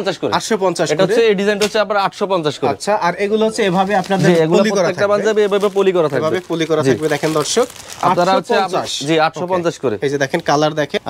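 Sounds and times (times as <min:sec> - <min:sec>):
man talking: 0:00.0 - 0:11.0.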